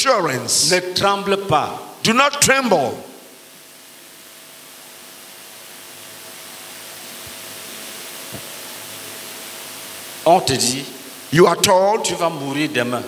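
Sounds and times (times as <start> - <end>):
faint hum: 0.0 - 13.0
steady hiss: 0.0 - 13.0.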